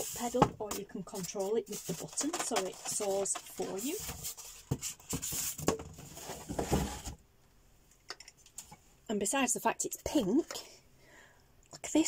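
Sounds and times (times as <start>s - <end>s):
knocks and rustling of handling: 0.0s - 7.2s.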